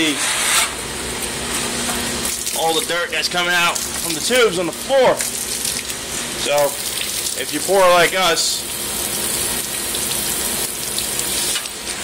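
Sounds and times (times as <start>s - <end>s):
water rushing onto floor: 5.1s - 6.0s.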